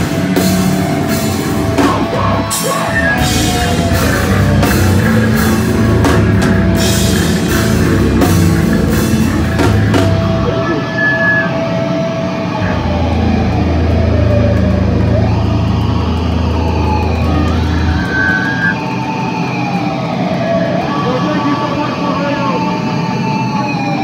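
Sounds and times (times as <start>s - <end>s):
bass guitar: 0.0s - 11.6s, 12.5s - 18.8s
drums: 0.0s - 11.6s, 12.2s - 21.0s
distorted electric guitars: 0.0s - 24.0s
guitar feedback tones: 0.0s - 24.0s.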